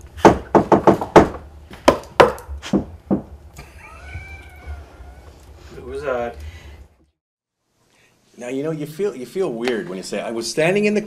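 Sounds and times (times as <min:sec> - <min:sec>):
knocking on wooden wall: 0:00.2 - 0:03.4.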